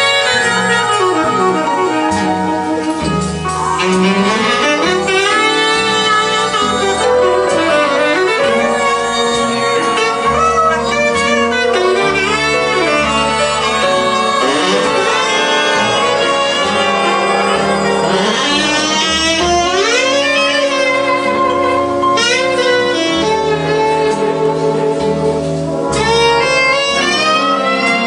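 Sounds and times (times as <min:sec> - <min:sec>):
big band jazz: 0:00.0 - 0:28.0
saxophone: 0:00.0 - 0:28.0.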